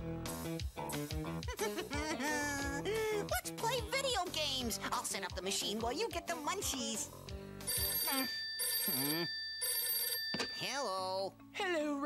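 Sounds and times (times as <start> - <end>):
telephone ringing: 7.7 - 10.9.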